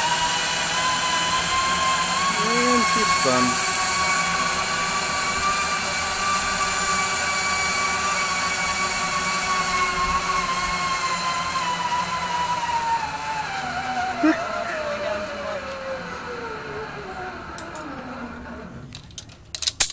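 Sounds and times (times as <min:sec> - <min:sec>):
zipline pulleys whining on cable: 0:00.0 - 0:19.7.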